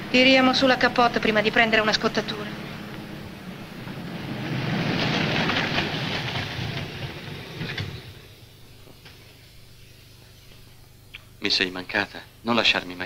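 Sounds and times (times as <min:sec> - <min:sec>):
car engine: 0:00.0 - 0:08.8
tyres crunching on dirt: 0:02.5 - 0:09.0.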